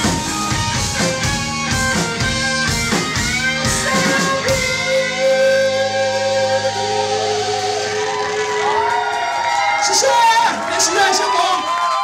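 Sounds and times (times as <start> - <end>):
electric guitar notes ringing: 0.0 - 9.2.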